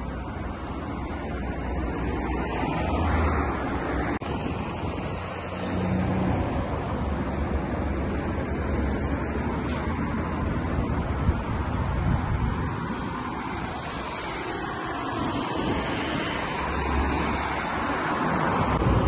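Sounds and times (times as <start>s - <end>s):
road traffic passing: 0.0s - 19.0s.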